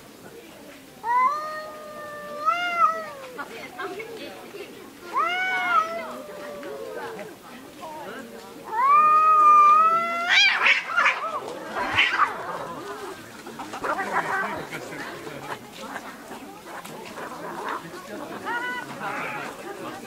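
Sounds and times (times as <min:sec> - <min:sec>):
cats caterwauling: 0:01.0 - 0:03.5, 0:05.1 - 0:07.3, 0:08.7 - 0:13.2.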